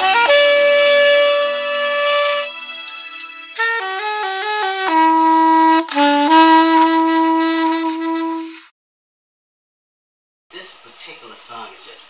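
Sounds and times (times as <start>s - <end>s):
soprano saxophone melody: 0.0s - 8.7s.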